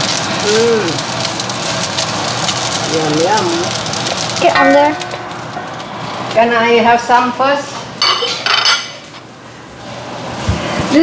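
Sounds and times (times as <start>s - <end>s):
rice sizzling in a wok: 0.0s - 11.0s.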